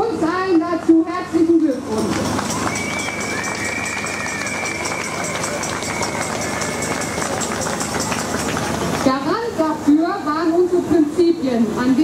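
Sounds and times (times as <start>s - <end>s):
crowd applauding: 2.0s - 9.3s
high whistle tone: 2.6s - 7.6s.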